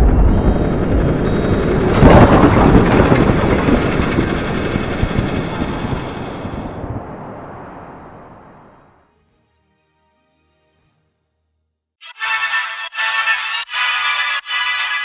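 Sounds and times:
thin chiming tones: 0:00.0 - 0:04.2
cinematic rumbling swell: 0:00.0 - 0:09.0.

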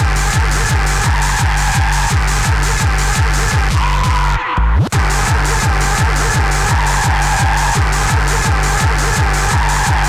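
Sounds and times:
fast hi-hats: 0:00.0 - 0:03.8, 0:04.9 - 0:10.0
dense synth layer: 0:00.0 - 0:10.0
distorted kick drum pounding: 0:00.0 - 0:10.0.

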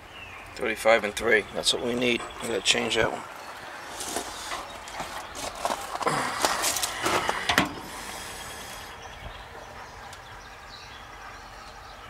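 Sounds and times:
shoes crunching on gravel: 0:03.8 - 0:07.4.

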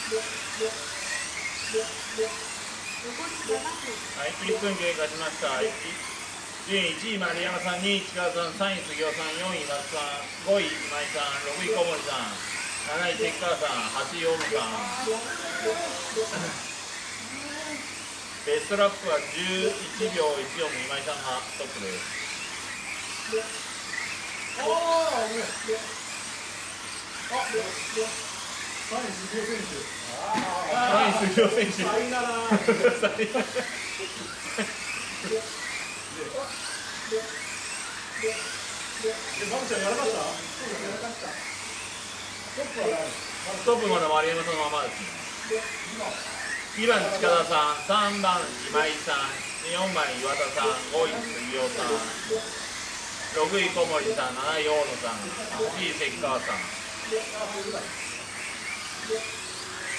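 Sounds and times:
small electric motors whining: 0:00.0 - 0:59.9
people talking and laughing: 0:13.3 - 0:17.9, 0:29.5 - 0:35.5.

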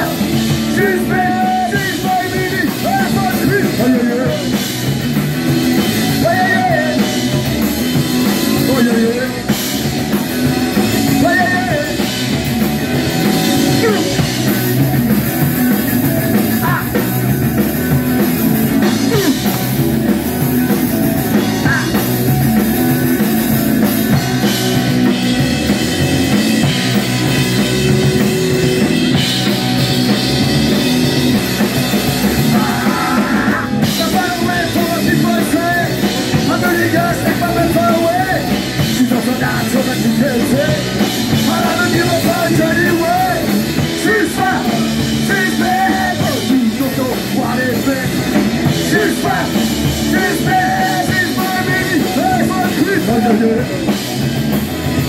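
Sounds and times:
person singing: 0:00.0 - 0:04.7, 0:06.0 - 0:07.5, 0:10.9 - 0:12.3, 0:18.8 - 0:19.6, 0:32.4 - 0:54.0
drum kit: 0:00.0 - 0:55.0
electric bass: 0:00.0 - 0:55.0
electric guitar: 0:00.0 - 0:55.0.

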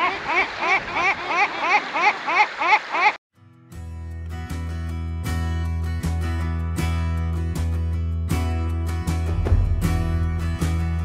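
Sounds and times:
surf rushing: 0:00.0 - 0:03.2
acoustic guitar music: 0:03.4 - 0:11.0.

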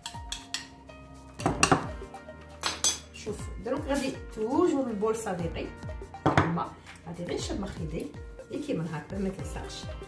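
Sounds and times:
utensils clinking against dishes: 0:00.0 - 0:00.8, 0:02.6 - 0:03.2
soft background music: 0:00.0 - 0:10.0.

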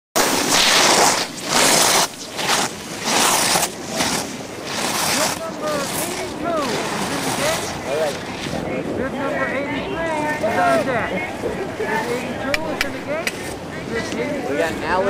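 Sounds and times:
steady hiss: 0:00.2 - 0:08.8
outdoor voices calling out: 0:03.6 - 0:15.0.

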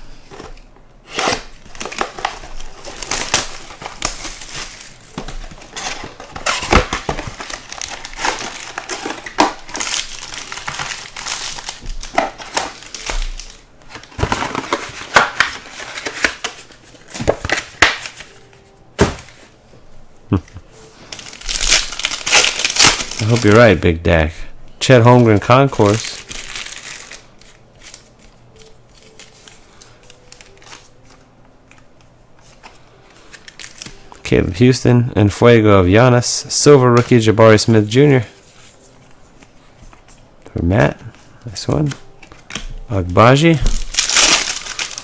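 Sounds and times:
foil pack tearing open: 0:01.1 - 0:18.2, 0:21.1 - 0:23.8, 0:25.7 - 0:28.1, 0:43.6 - 0:45.0
wrapping crinkling and crackling: 0:01.1 - 0:18.7, 0:20.3 - 0:24.0, 0:24.8 - 0:34.4, 0:41.5 - 0:45.0.

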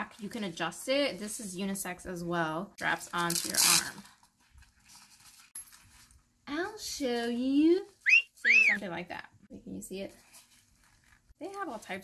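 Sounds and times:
fabric armband rustling: 0:02.8 - 0:06.4, 0:09.8 - 0:12.0.

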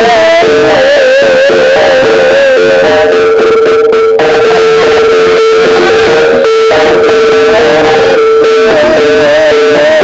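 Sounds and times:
loud distorted traditional dance music: 0:00.0 - 0:10.0
wavering melody line: 0:00.0 - 0:10.0.

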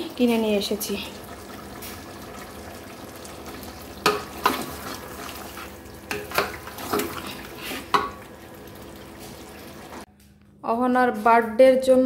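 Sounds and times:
steady sizzle: 0:00.0 - 0:10.1
spatula scraping pot: 0:04.0 - 0:08.2.

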